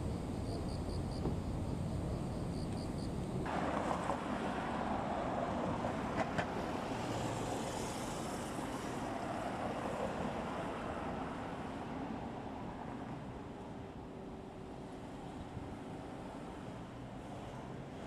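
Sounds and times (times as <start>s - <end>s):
passing cars: 1.2s - 13.5s.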